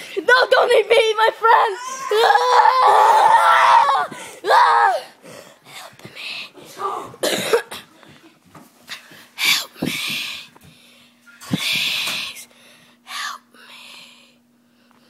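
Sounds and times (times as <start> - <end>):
person coughing and gasping: 6.8 - 8.0.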